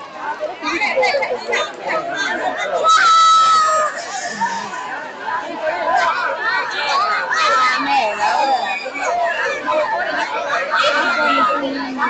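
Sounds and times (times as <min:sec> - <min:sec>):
children and adults talking: 0:00.0 - 0:12.0.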